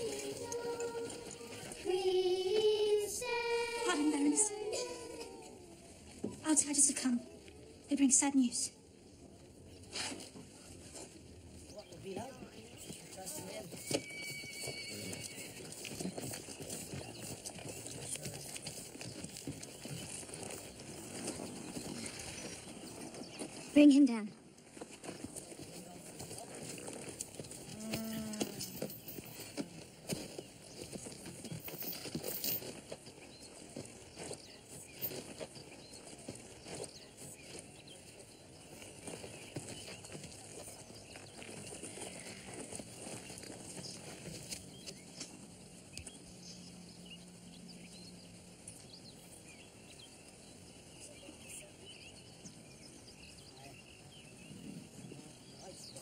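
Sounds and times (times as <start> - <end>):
footsteps: 0.0 - 7.6, 9.8 - 45.4
rustles: 0.0 - 8.3, 8.9 - 56.0.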